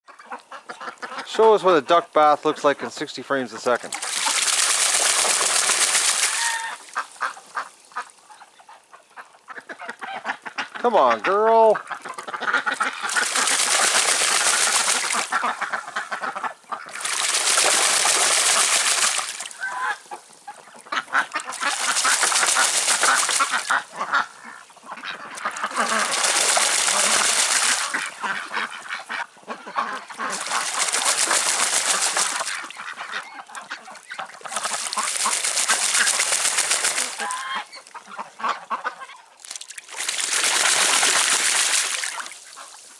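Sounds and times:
water dripping: 3.6s - 28.9s, 30.2s - 38.5s, 39.4s - 42.9s
duck splashing in water: 3.6s - 42.9s.

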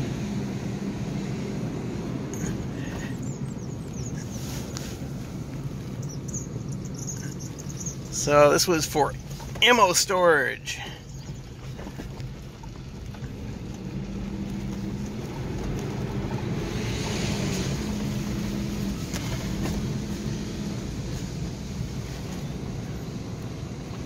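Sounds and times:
car engine hum: 0.0s - 24.0s
road noise: 0.0s - 24.0s.

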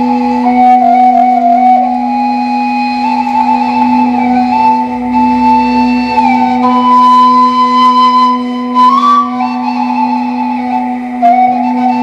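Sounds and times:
low drone: 0.0s - 12.0s
wooden flute slow melody: 0.0s - 12.0s.

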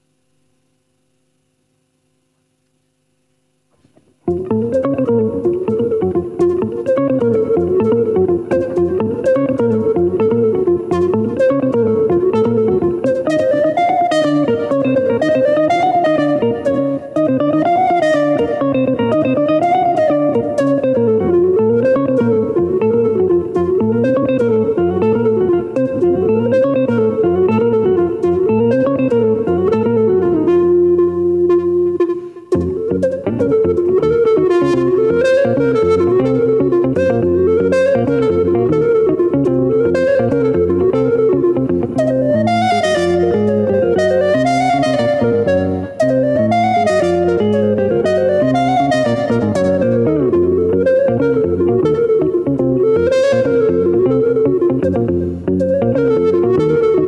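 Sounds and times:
electric guitar playing: 3.7s - 57.0s
woodwind playing: 4.3s - 57.0s.

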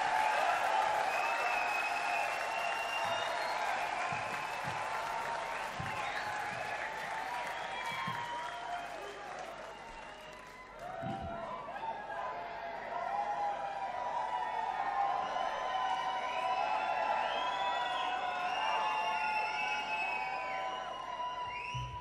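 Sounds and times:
audience applauding and cheering: 0.0s - 22.0s.

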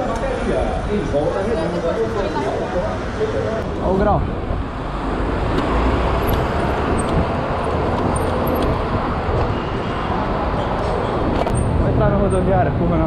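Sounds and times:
traffic noise: 0.0s - 13.0s
bike riding rushing noise: 2.0s - 12.2s.

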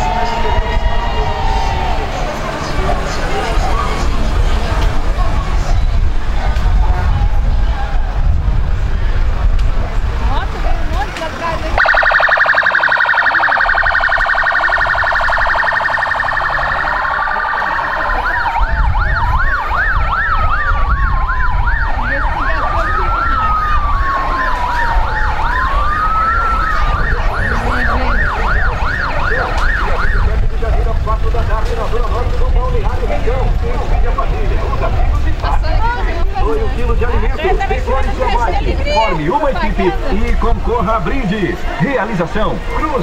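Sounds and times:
emergency vehicle sirens: 0.0s - 43.0s
engine rumble: 0.0s - 43.0s.

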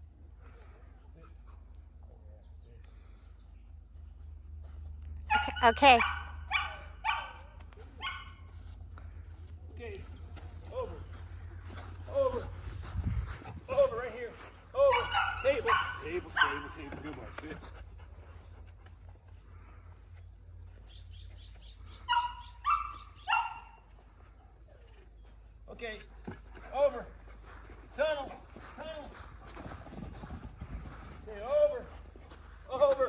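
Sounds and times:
dog barking high-pitched: 5.3s - 7.4s, 8.0s - 8.4s, 14.9s - 16.7s, 22.1s - 23.8s.

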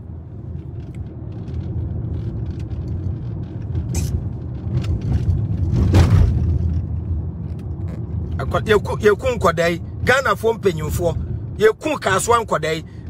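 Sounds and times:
car rumble from inside cabin: 0.0s - 13.0s.

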